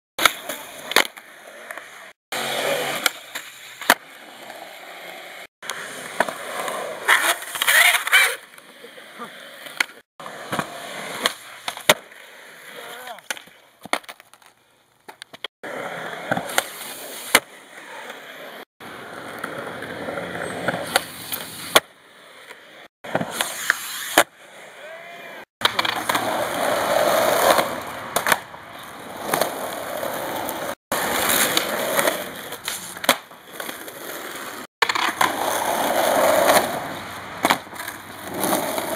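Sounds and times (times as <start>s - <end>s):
skateboard scraping and clattering: 0.2s - 24.7s, 25.6s - 38.9s
skateboard wheels rolling on concrete: 0.2s - 38.9s
skateboard clacks: 25.6s - 26.6s.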